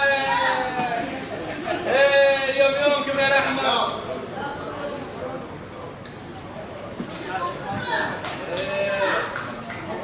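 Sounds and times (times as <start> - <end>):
long drawn-out shout: 0.0 - 1.2
voices shouting and cheering: 0.0 - 3.7.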